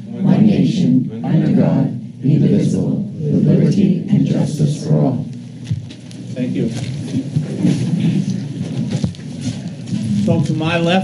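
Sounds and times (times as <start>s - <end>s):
people shuffling: 4.8s - 11.0s
chairs scraping: 6.6s - 10.6s.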